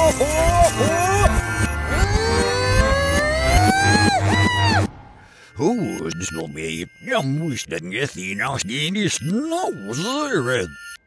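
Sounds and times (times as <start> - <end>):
music bed: 0.0 - 11.0
tone gliding upward: 0.7 - 7.0.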